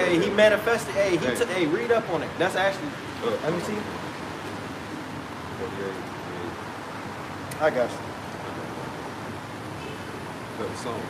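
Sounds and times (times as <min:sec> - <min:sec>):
street background noise: 0:00.0 - 0:11.0.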